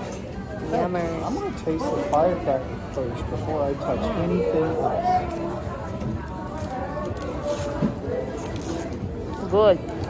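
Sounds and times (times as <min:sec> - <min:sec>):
restaurant chatter: 0:00.0 - 0:10.0.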